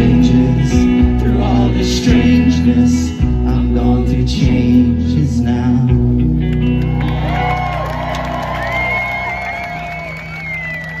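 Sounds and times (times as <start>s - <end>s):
guitar and bass chord ringing: 0.0s - 9.5s
drums: 0.0s - 11.0s
audience whooping: 6.7s - 11.0s
long wavering whistle: 8.6s - 11.0s.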